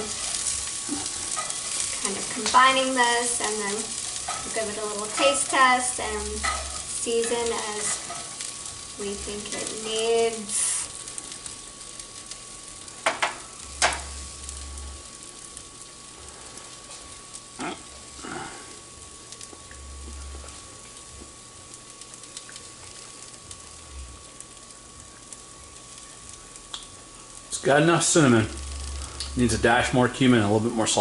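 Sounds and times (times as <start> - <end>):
vegetables sizzling in a frying pan: 0.0 - 31.0.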